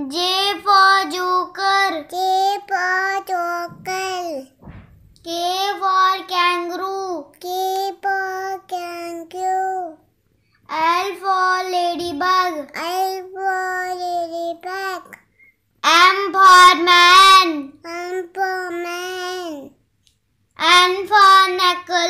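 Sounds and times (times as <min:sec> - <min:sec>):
child singing: 0:00.0 - 0:04.6, 0:05.2 - 0:10.0, 0:10.7 - 0:19.8, 0:20.6 - 0:22.0.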